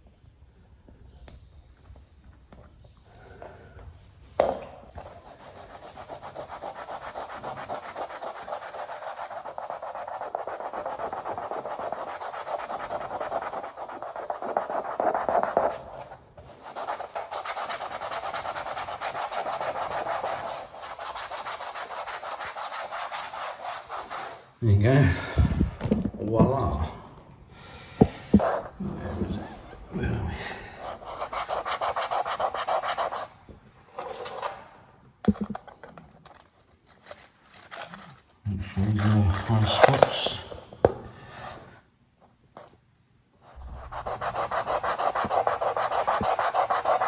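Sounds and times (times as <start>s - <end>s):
hand rubbing floor surface: 4.9s - 24.5s, 28.0s - 35.7s, 36.3s - 41.9s, 43.4s - 47.0s.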